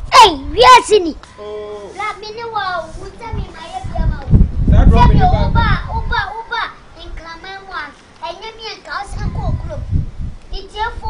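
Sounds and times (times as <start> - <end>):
children calling and talking: 0.0 - 11.0.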